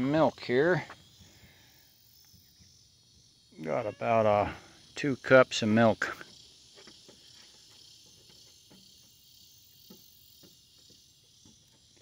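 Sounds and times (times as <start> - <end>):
crickets chirring: 0.0 - 12.0.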